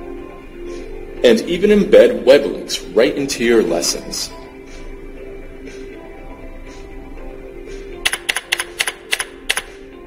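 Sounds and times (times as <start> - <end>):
soft background music: 0.0 - 10.0
computer keyboard typing: 8.0 - 9.7.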